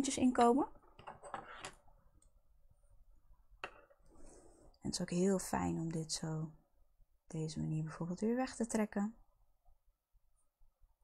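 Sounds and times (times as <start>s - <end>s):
woman speaking: 0.0s - 0.8s, 4.8s - 6.6s, 7.3s - 9.2s.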